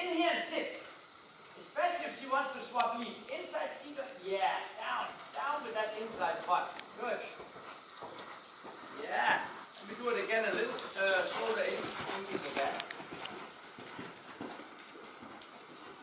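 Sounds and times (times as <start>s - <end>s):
hoofbeats on sand: 6.0s - 16.0s
person talking: 9.0s - 12.9s.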